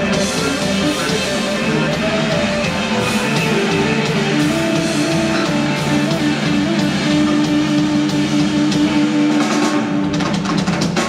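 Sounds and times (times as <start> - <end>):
live rock band playing loud: 0.0 - 11.0.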